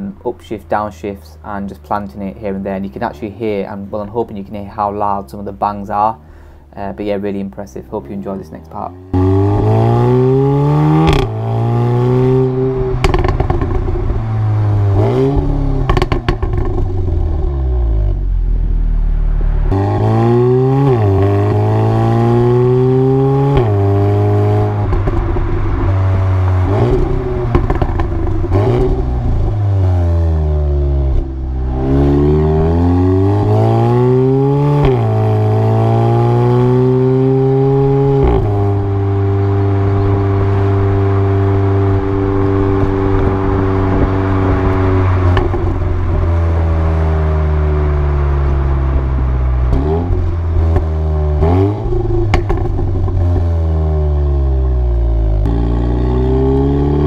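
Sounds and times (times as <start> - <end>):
car exhaust revving: 7.7 - 57.0
exhaust pops and bangs: 12.9 - 14.4, 15.3 - 17.3, 24.7 - 29.6, 45.2 - 46.2, 51.8 - 53.5.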